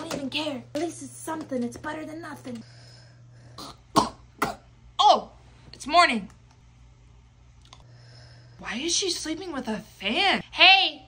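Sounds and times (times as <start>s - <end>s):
soft breath: 2.6s - 3.6s, 7.8s - 8.6s
woman coughing: 3.6s - 4.7s.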